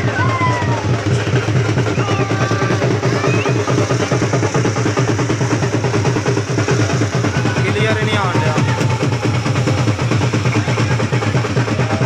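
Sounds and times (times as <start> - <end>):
fast steady drumming: 0.0 - 12.0.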